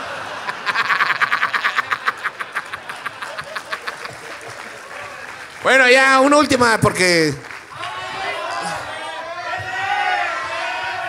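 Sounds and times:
man laughing into microphone: 0.0 - 4.6.

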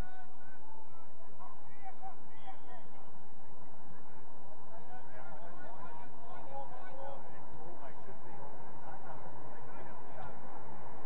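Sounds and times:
steady open-air noise: 0.0 - 11.0.

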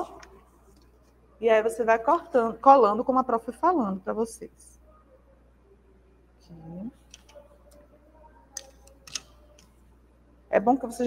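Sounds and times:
handling clicks: 8.6 - 9.7.

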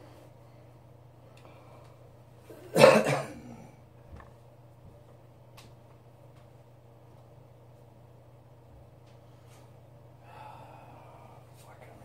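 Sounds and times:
man coughing: 2.6 - 3.7.

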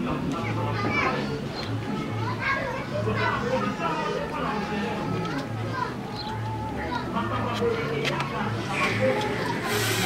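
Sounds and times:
children and people talking: 0.0 - 10.0.

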